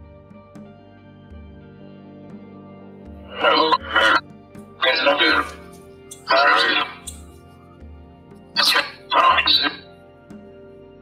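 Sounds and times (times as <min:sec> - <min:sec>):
soft background music: 0:00.0 - 0:11.0
breathy voice-like recording: 0:03.2 - 0:04.2, 0:04.8 - 0:07.1, 0:08.6 - 0:09.8.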